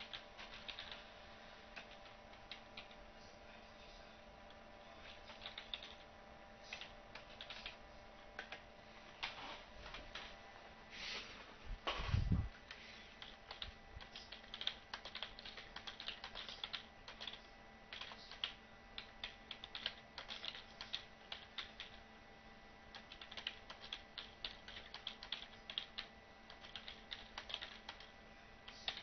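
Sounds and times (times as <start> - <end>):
computer keyboard typing: 0.0 - 1.0, 1.7 - 3.1, 4.5 - 6.1, 6.7 - 10.3, 12.6 - 22.0, 22.9 - 29.0.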